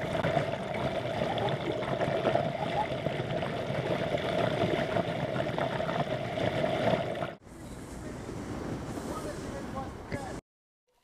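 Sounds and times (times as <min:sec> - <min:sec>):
steady underwater hum: 0:00.0 - 0:07.4.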